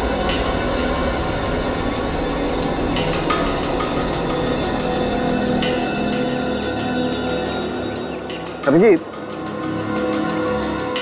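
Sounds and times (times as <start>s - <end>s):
suspense music with sustained tones: 0.0s - 11.0s.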